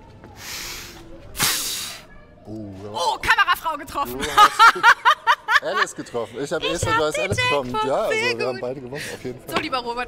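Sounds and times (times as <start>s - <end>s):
woman spitting: 1.4s - 2.0s.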